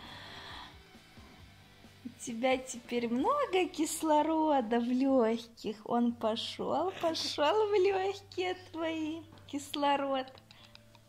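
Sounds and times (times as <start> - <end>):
child breathing in: 0.0 - 0.8.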